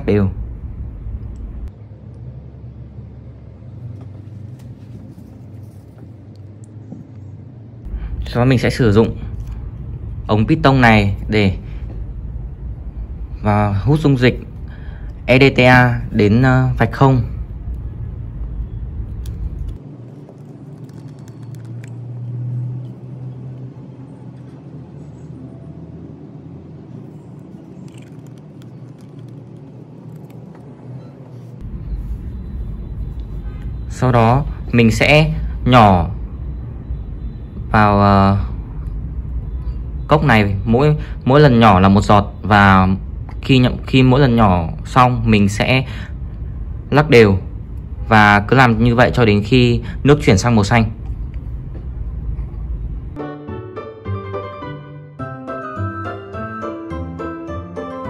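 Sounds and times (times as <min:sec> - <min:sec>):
low background rumble: 0:00.0 - 0:37.6, 0:42.4 - 0:53.2.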